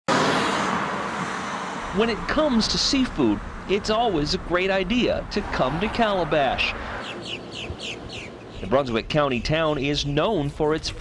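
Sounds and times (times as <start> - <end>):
car driving past: 0.1 - 2.4, 5.2 - 8.6.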